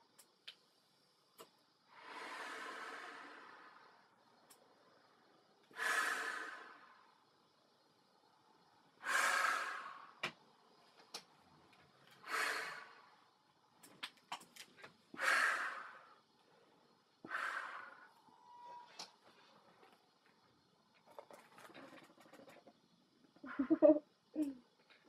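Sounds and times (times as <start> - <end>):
breathing through gas mask: 1.9 - 4.0, 5.7 - 7.0, 9.0 - 10.2, 12.2 - 13.1, 15.2 - 16.2, 17.2 - 18.2.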